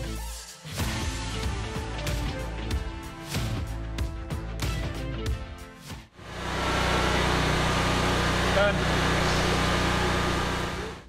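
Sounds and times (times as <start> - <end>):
background music with beat: 0.0 - 6.1.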